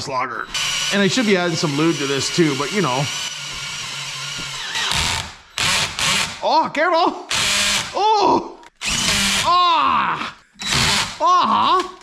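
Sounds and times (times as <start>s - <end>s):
electric drill boring metal: 0.5s - 6.4s, 7.3s - 7.9s, 8.8s - 9.4s, 10.6s - 11.2s.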